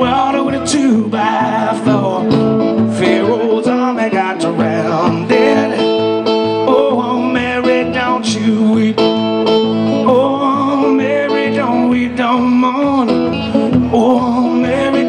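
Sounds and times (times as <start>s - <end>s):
acoustic guitar strumming: 0.0s - 15.0s
man singing: 0.0s - 15.0s.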